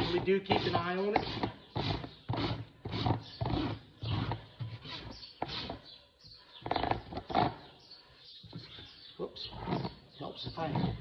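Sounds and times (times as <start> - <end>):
rasp filing a hoof: 0.0 - 6.0, 6.6 - 7.8, 8.5 - 11.0.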